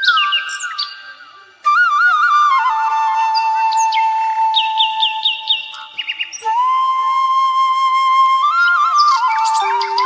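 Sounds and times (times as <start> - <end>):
flute long note: 1.6 - 5.5, 6.4 - 10.0
high bird chirps: 9.0 - 10.0.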